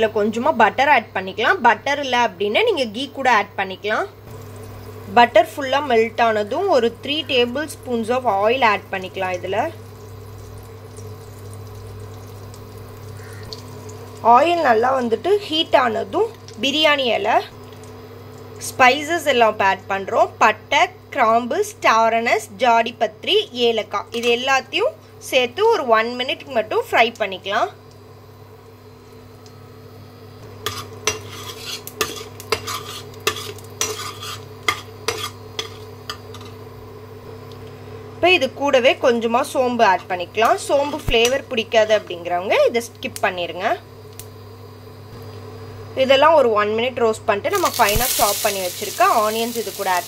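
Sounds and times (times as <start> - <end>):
steady low hum: 0.0 - 50.0
butter and oil sizzling: 1.4 - 20.3, 30.4 - 37.4, 38.4 - 44.8, 47.5 - 50.0
metal spoon scraping a pan: 30.6 - 36.6.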